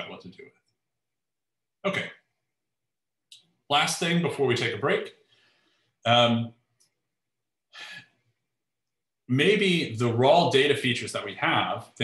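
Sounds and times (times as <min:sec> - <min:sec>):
man breathing softly: 0:05.2 - 0:06.0.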